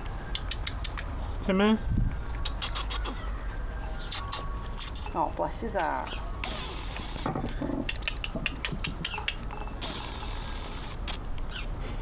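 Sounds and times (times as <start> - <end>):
rustling hiss: 6.4 - 8.4, 9.7 - 12.0.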